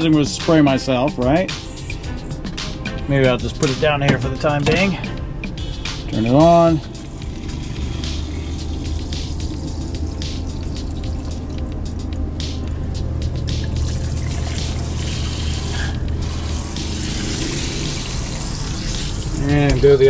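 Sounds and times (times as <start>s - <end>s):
water pump humming: 4.0s - 12.4s, 13.2s - 20.0s
shower spraying water: 13.6s - 19.7s.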